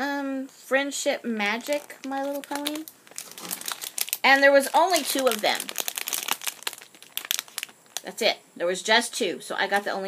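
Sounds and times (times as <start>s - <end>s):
foil packets crinkling: 1.4s - 8.3s.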